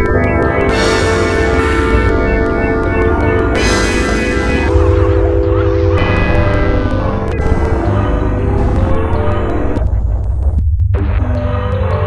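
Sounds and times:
synthesizer sustained chord: 0:00.0 - 0:09.9
pulsing synth bass: 0:00.0 - 0:11.7.

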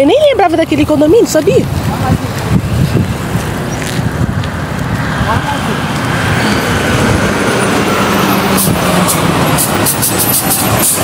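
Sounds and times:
heavy vehicles driving past: 0:00.0 - 0:11.0
steady engine hum: 0:00.0 - 0:11.0.

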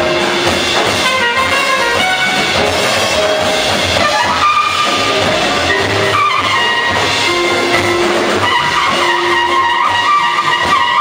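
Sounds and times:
cymbals and drums: 0:00.0 - 0:11.0
horn sustaining long notes: 0:00.0 - 0:11.0
jazz band playing: 0:00.0 - 0:11.0.

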